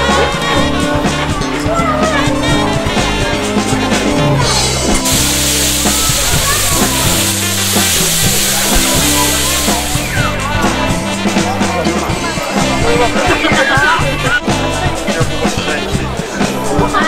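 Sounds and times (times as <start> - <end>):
background music with bass line: 0.0 - 17.0
meat sizzling on a griddle: 5.0 - 10.2.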